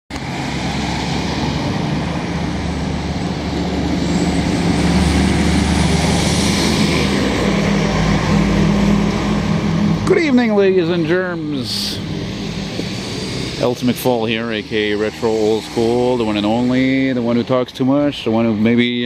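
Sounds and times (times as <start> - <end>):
bus driving past: 0.1 - 19.0
truck driving past: 0.1 - 19.0.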